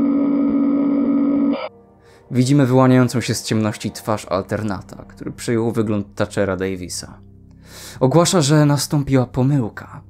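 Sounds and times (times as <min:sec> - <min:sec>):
low electronic tone: 0:00.0 - 0:01.8.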